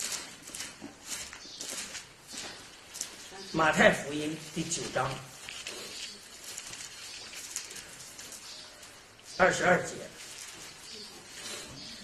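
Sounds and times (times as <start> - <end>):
thin pages being turned: 4.4 - 8.9.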